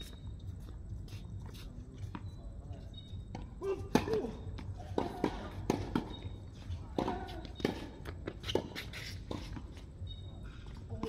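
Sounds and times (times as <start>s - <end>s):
tennis ball bouncing on hard court: 3.3s - 6.3s.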